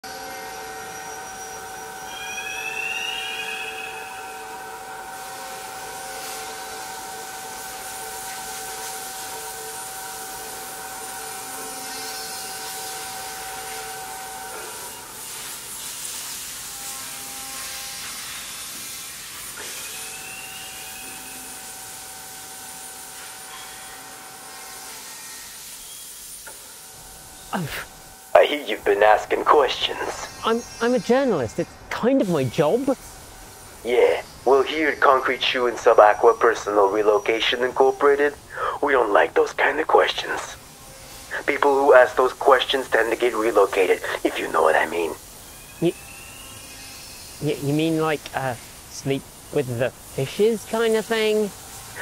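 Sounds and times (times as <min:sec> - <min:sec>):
hissing drone with held tones: 0:00.0 - 0:52.0
rising chirps: 0:01.6 - 0:04.8.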